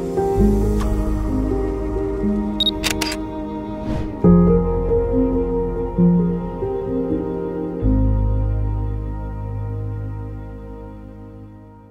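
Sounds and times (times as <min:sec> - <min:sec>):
soft background music: 0:00.0 - 0:11.9
camera shutter sound effect: 0:02.6 - 0:03.2.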